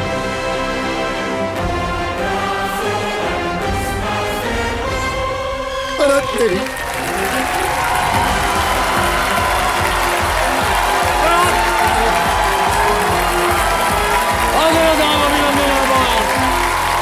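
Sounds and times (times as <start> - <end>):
theme music with low beat: 0.0 - 17.0
audience applauding and cheering: 6.0 - 17.0.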